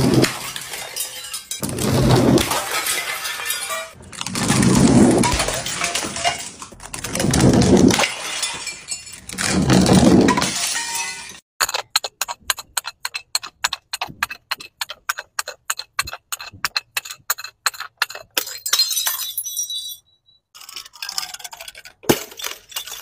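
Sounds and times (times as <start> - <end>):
bottle smashing on concrete: 0.0 - 11.4, 18.4 - 20.1.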